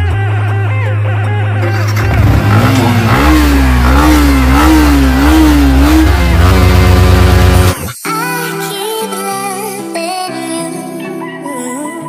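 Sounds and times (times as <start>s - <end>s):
background music: 0.0s - 12.0s
motorcycle engine revving: 1.6s - 8.0s.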